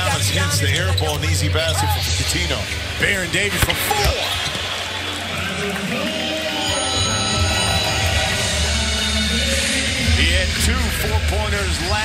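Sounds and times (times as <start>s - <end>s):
arena crowd noise: 0.0s - 12.0s
music over loudspeakers: 1.8s - 12.0s.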